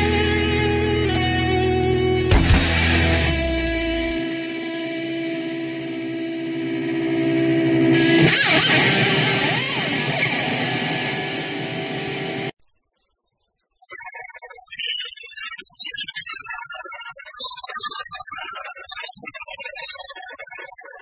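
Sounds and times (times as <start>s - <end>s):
distorted electric guitar: 0.0s - 12.6s.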